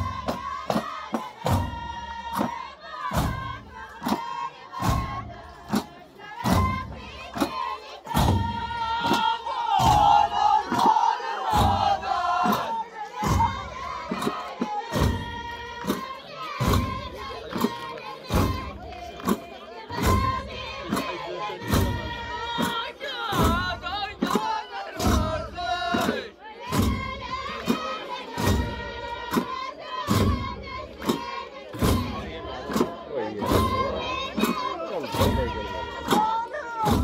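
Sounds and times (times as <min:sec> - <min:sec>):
frame drums: 0:00.0 - 0:37.0
men chanting together: 0:00.0 - 0:37.0.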